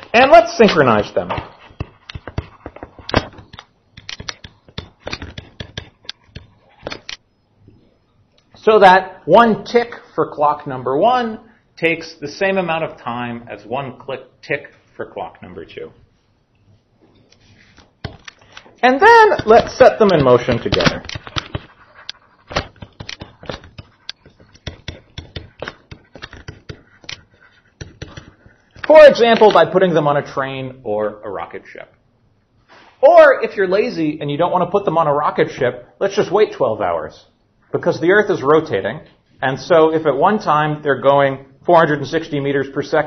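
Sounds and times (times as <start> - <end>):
stylus tapping and scratching screen: 0.0 - 8.5, 16.6 - 29.8.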